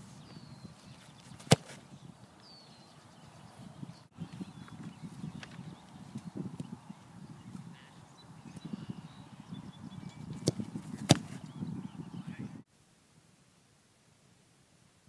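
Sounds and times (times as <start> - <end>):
foot kicking football: 0.2 - 2.0, 10.2 - 11.7.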